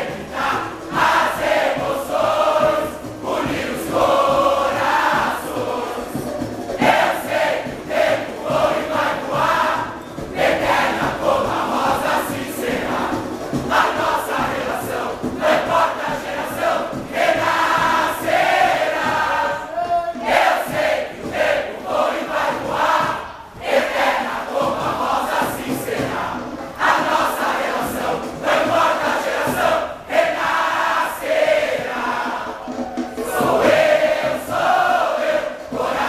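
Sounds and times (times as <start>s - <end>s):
large chorus singing: 0.0s - 36.0s.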